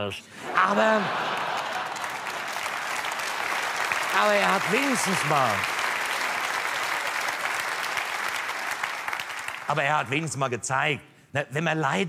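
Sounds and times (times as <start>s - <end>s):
audience applauding: 0.6s - 10.2s.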